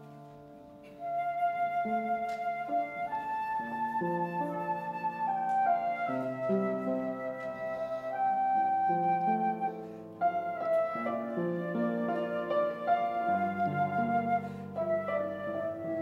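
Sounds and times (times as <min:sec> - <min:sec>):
flute slow melody: 0:00.0 - 0:16.0
piano accompaniment: 0:00.0 - 0:16.0.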